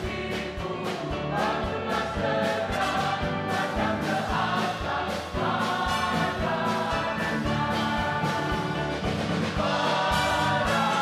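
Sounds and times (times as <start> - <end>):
bass guitar: 0.0 - 11.0
group of voices singing: 0.0 - 11.0
keyboard: 0.0 - 11.0.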